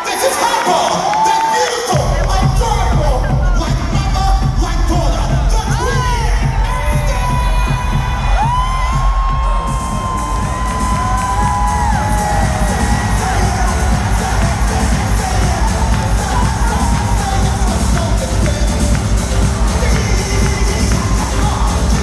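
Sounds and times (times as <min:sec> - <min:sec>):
concert crowd cheering: 0:00.0 - 0:22.0
loud pop music with heavy bass: 0:00.0 - 0:22.0.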